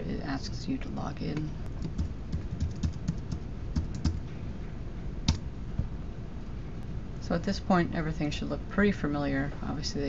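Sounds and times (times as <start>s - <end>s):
typing on computer keyboard: 1.8s - 4.2s.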